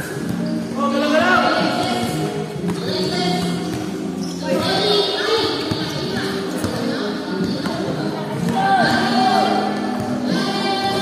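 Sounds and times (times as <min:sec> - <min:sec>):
players' voices echoing: 0:00.0 - 0:11.0
basketball bouncing on court: 0:02.6 - 0:09.0.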